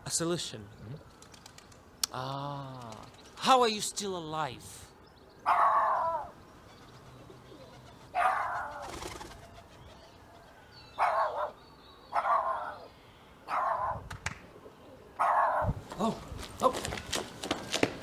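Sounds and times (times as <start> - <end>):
dog barking: 5.5 - 6.0, 8.2 - 8.6, 11.0 - 11.6, 12.2 - 12.8, 13.5 - 14.0, 15.2 - 15.7.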